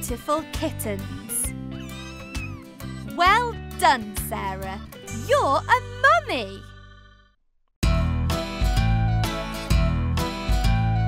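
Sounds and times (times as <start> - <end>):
light background music: 0.0 - 6.7
cartoon kittens mewing: 1.7 - 3.0.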